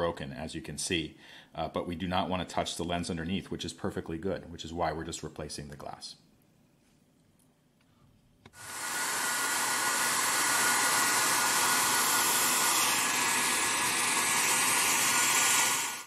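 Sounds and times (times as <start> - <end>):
hair dryer blowing: 8.6 - 16.0.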